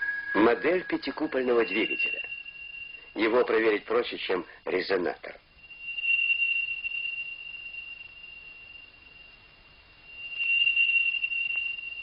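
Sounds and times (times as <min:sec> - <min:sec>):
steady high-pitched whine: 0:00.0 - 0:12.0.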